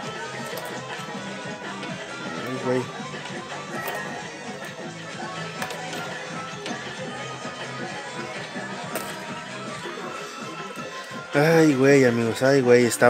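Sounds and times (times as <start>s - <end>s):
electronic arcade music: 0.0s - 13.0s.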